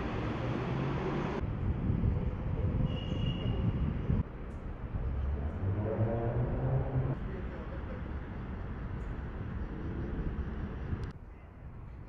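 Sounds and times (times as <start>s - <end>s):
vehicle engine rumble: 0.0s - 11.2s
road noise: 0.0s - 12.0s.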